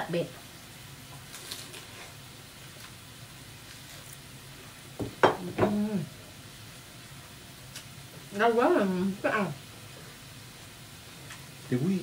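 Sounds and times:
food sizzling on grill: 0.0s - 12.0s.

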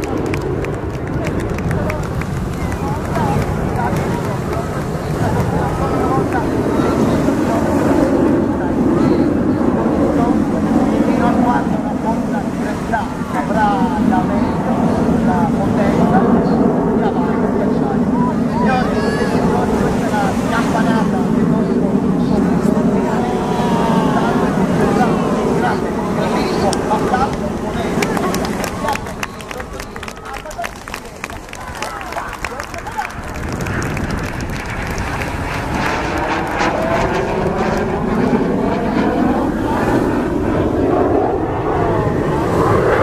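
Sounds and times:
jet aircraft overhead: 0.0s - 43.0s
spectators chattering: 0.0s - 43.0s.

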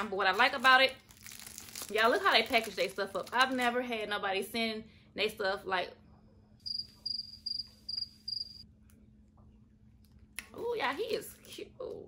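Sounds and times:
high single-pitched chirps: 6.7s - 8.6s.

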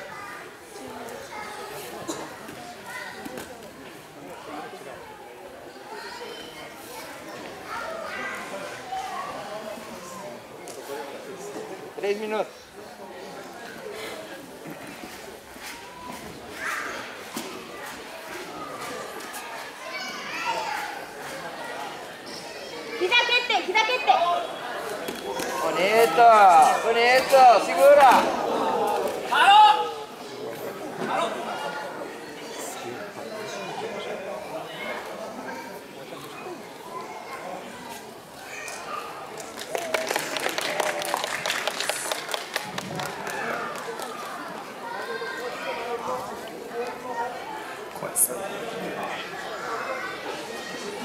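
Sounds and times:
crowded hall hum: 0.0s - 51.0s
spectators clapping: 39.3s - 44.4s.

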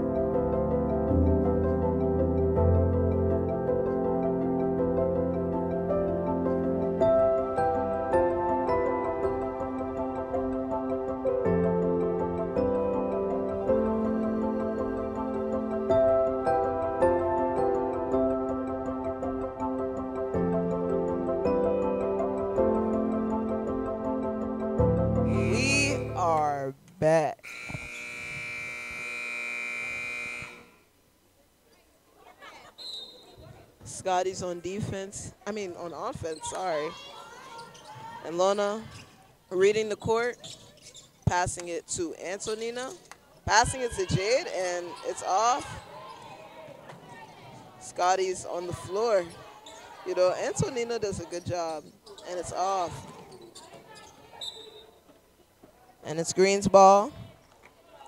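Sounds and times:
scoreboard horn buzzing: 25.3s - 26.2s, 27.4s - 30.9s
basketball play in a gym: 36.3s - 41.4s, 44.9s - 47.8s, 48.7s - 50.1s, 51.8s - 55.0s
high-pitched shoe squeak: 37.5s - 38.1s, 40.3s - 41.2s, 53.1s - 55.0s.

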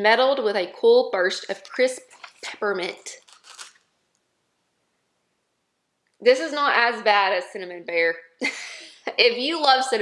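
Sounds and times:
plastic packaging crackling: 1.6s - 3.9s.

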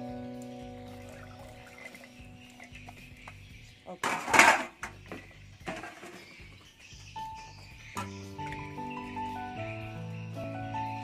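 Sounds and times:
held music chord: 0.0s - 3.2s.

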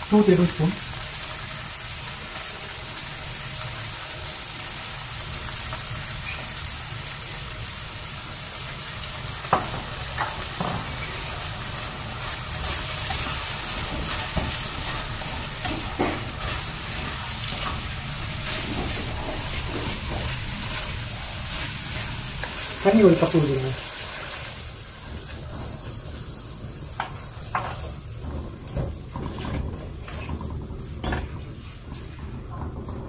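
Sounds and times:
food sizzling in a wok: 0.0s - 32.8s
spatula knocking on pan: 13.8s - 17.1s.

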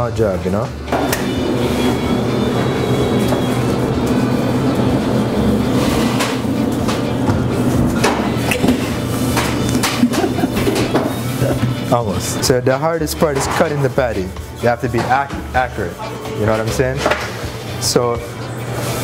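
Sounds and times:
background music with sustained tones: 0.0s - 19.0s.

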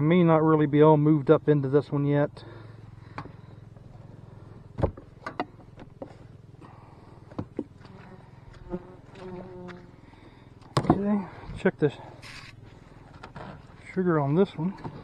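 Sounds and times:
bees buzzing: 6.6s - 13.0s.

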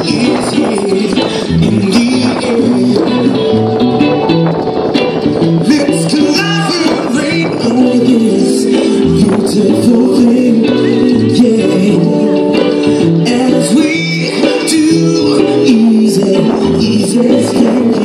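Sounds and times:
reggae band playing: 0.0s - 18.0s.

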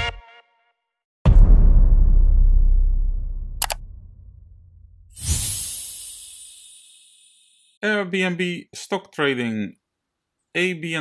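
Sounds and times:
deep synthetic boom: 1.3s - 5.1s
mouse click sound effect: 3.6s - 3.8s.

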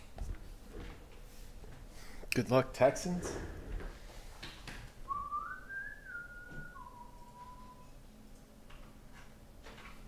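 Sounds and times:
person whistling: 5.1s - 8.0s.

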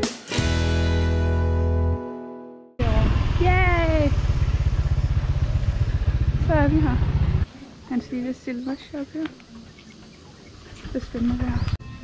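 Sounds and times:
motorbike engine running: 2.8s - 7.5s.

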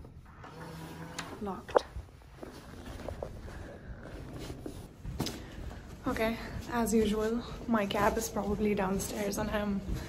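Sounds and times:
clothing and bag rustling: 0.1s - 10.0s
quiet footsteps: 1.3s - 10.0s.

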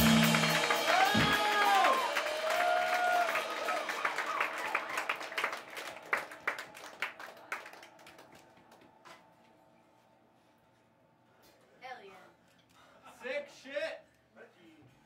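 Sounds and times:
rock band distorted guitar: 0.0s - 1.9s
crowd clapping: 0.0s - 9.6s
crowd whooping: 0.0s - 9.9s.

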